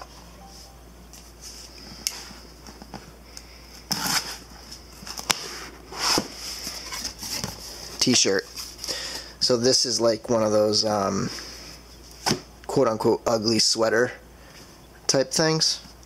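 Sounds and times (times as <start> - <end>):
knife cutting cardboard seal: 3.9 - 4.4.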